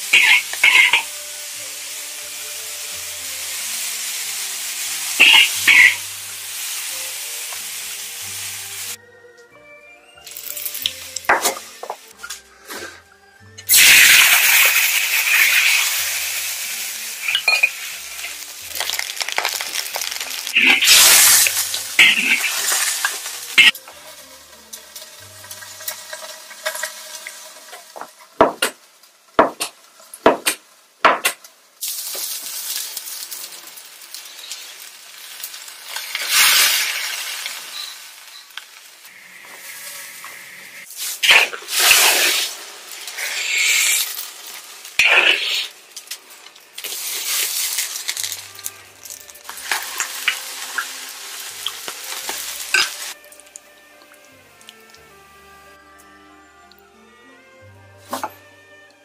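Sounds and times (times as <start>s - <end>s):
hot oil sizzling in a pan: 0.0s - 9.0s, 10.3s - 12.2s, 13.7s - 55.7s.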